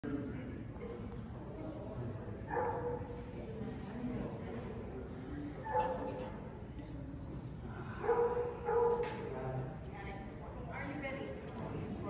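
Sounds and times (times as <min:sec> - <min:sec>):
dog barking: 0:02.5 - 0:03.0, 0:08.0 - 0:09.0.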